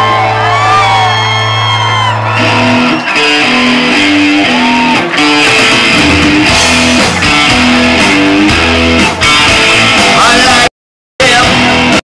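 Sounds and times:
live rock band: 0.0s - 12.0s
lead guitar bending notes: 2.2s - 10.2s.

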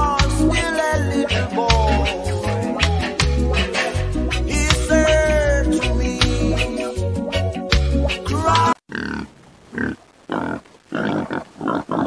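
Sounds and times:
music: 0.0s - 8.8s.

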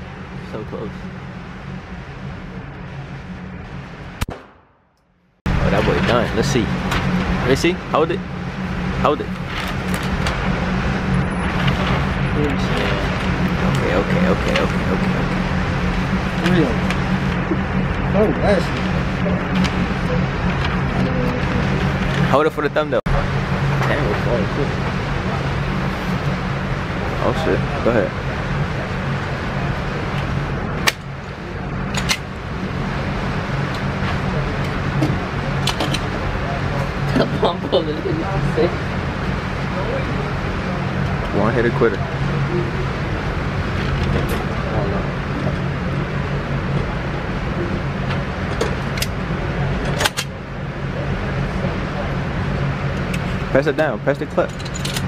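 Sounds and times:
steady low hum: 0.0s - 55.0s
gunshot: 4.2s - 4.8s.

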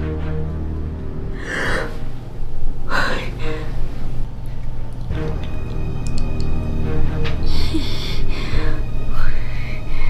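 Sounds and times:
low background music: 0.0s - 10.0s
woman gasping: 1.4s - 2.0s, 7.4s - 10.0s.

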